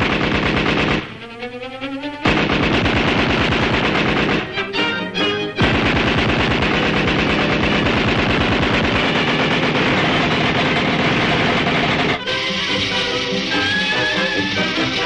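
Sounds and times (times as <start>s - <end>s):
orchestral music: 1.0s - 5.8s, 8.9s - 15.0s
machine-gun rattle: 5.6s - 12.2s.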